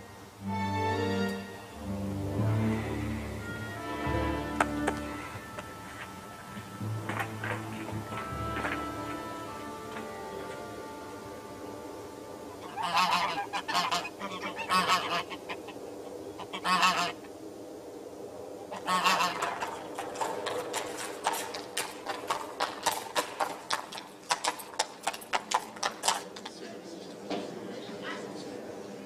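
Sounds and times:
birds calling: 0:00.0 - 0:24.3.

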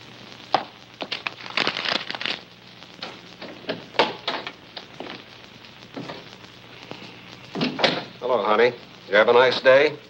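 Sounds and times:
old film soundtrack hiss: 0:00.0 - 0:10.0.

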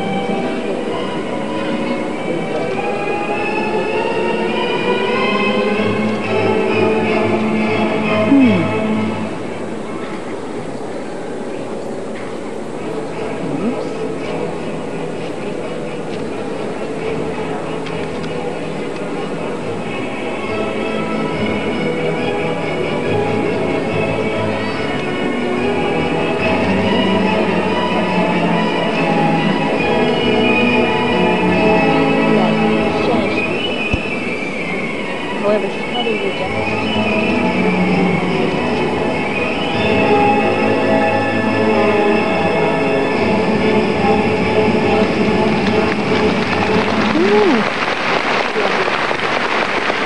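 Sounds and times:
music with sustained chords: 0:00.0 - 0:47.2
audience applause: 0:45.6 - 0:50.0
crowd whooping: 0:46.6 - 0:47.9.

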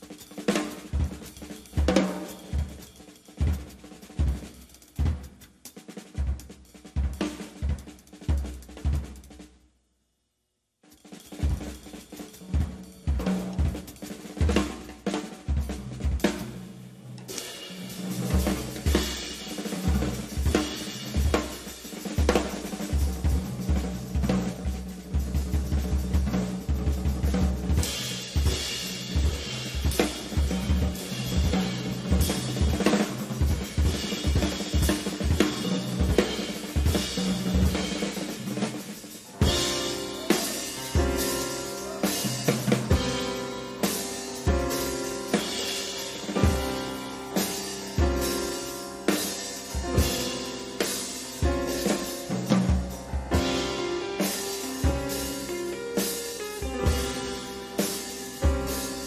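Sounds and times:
drum kit playing: 0:00.0 - 0:09.6, 0:10.8 - 0:59.0.

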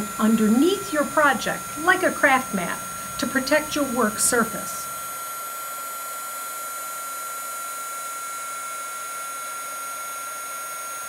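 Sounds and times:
heat tool fan whining: 0:00.0 - 0:11.0.

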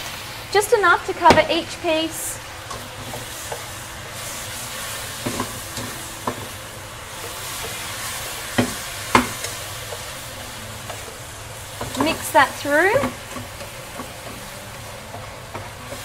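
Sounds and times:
chicken sizzling in a frying pan: 0:00.0 - 0:16.0
utensil knocking against pan: 0:08.6 - 0:09.4.

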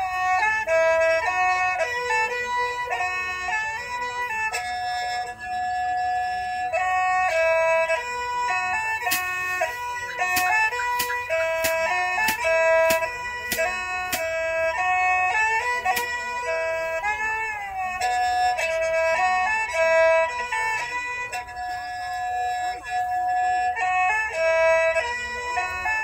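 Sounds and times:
reedy wind instrument melody: 0:00.0 - 0:26.0
steady tapping beat: 0:06.8 - 0:21.8.

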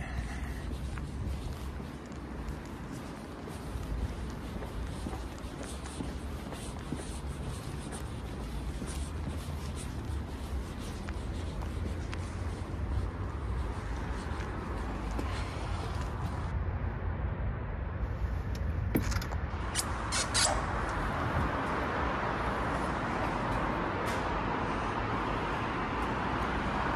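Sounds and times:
city road traffic rumble: 0:00.0 - 0:26.9.

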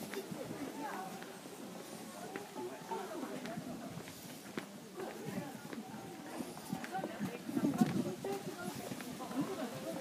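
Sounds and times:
footsteps on stone paving: 0:00.0 - 0:10.0
indistinct chatter: 0:00.0 - 0:10.0.

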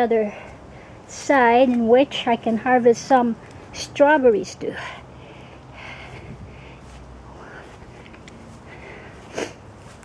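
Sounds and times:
footsteps on grass: 0:06.0 - 0:10.0.

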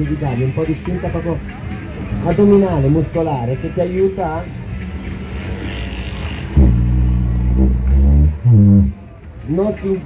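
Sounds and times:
didgeridoo drone: 0:05.6 - 0:09.1.

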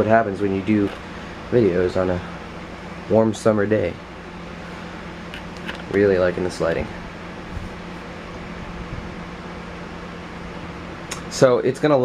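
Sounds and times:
mechanical hum and hiss: 0:00.0 - 0:12.0.

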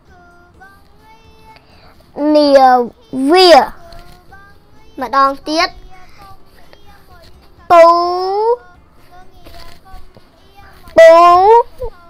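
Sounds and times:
faint person singing: 0:00.0 - 0:12.0
child reading aloud: 0:02.2 - 0:04.0, 0:04.8 - 0:08.7, 0:09.4 - 0:12.0.

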